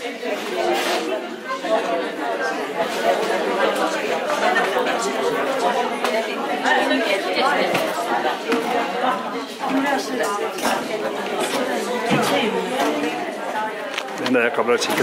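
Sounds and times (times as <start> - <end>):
women talking babble: 0.0 - 15.0.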